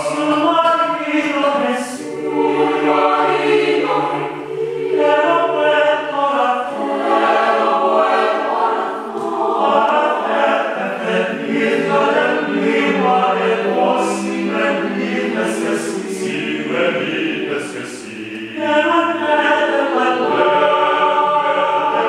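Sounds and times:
mixed choir singing a cappella: 0.0 - 22.0.

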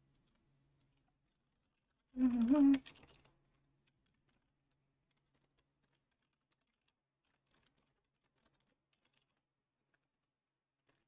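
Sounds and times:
faint keyboard typing: 0.0 - 11.0.

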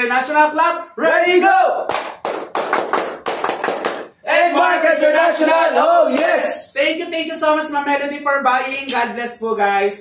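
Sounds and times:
rapid hand clapping: 1.9 - 4.2.

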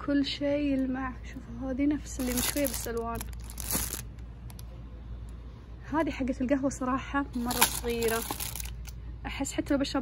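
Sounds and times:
plastic wrapping crinkling: 2.1 - 4.6, 7.4 - 9.0.

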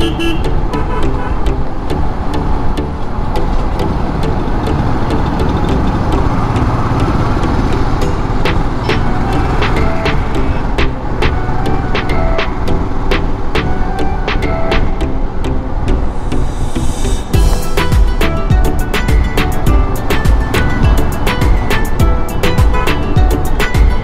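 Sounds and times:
background music: 0.0 - 24.0
motorcycle engine rumble: 0.0 - 24.0
wind noise: 1.6 - 24.0
sharp regular beat: 7.6 - 13.7, 16.7 - 24.0.

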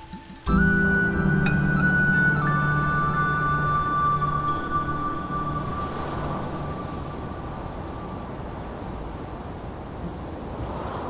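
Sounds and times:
film score melody: 0.0 - 8.3
low drone: 0.0 - 8.7.

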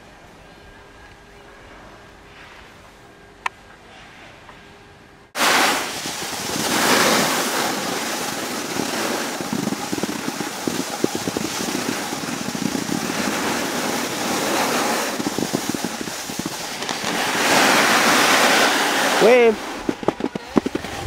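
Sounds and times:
skis scraping over snow: 5.4 - 21.0
wind buffeting microphone: 5.4 - 21.0.

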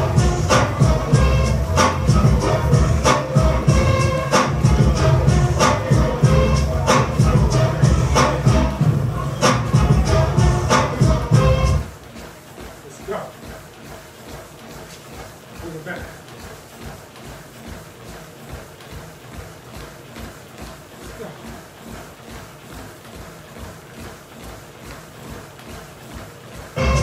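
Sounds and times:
running footsteps on treadmill: 0.0 - 27.0.

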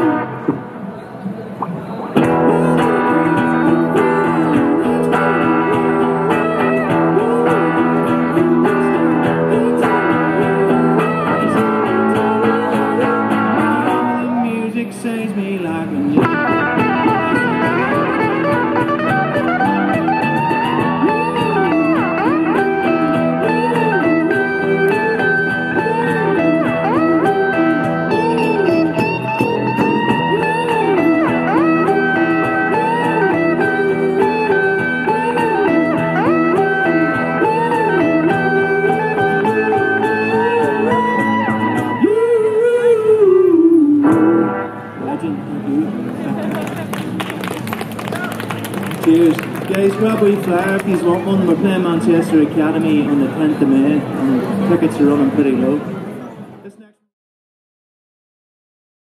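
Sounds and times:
street band playing guitars: 0.0 - 56.7
cajon beat: 1.6 - 14.1, 16.2 - 42.2, 45.9 - 52.1.

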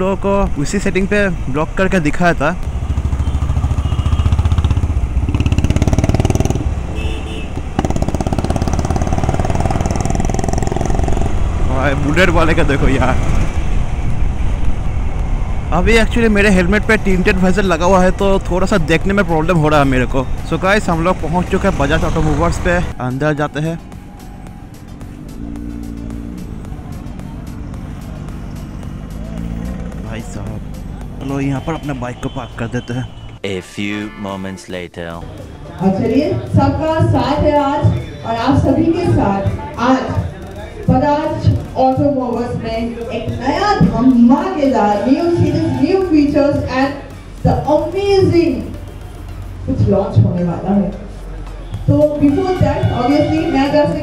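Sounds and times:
motorcycle engine running: 2.6 - 12.3, 23.8 - 31.2.

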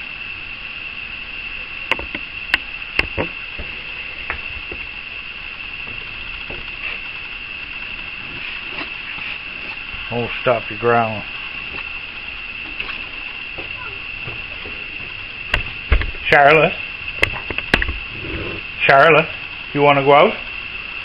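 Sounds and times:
night insects chorus: 0.0 - 21.0
sharp clicks and knocks: 1.9 - 4.9, 17.2 - 18.0.

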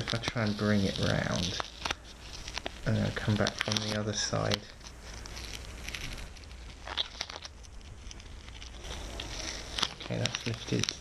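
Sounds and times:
masking tape being peeled: 0.0 - 11.0
tape crackling: 0.0 - 11.0.

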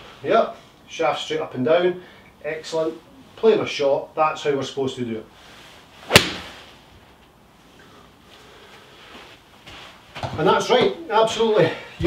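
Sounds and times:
footsteps on artificial turf: 9.0 - 11.0.

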